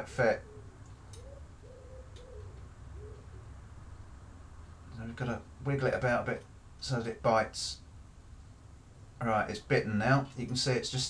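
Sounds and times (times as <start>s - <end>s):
pigeon cooing: 0.3s - 3.6s.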